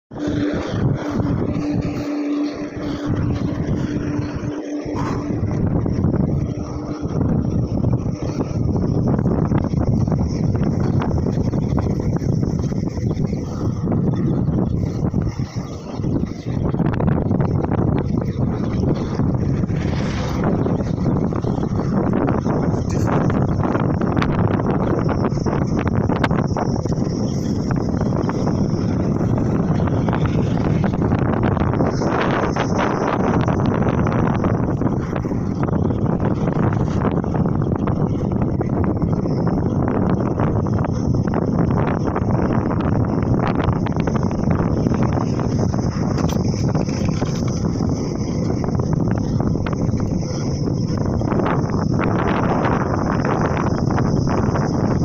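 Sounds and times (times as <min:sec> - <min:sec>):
wind buffeting microphone: 0:00.1 - 0:55.0.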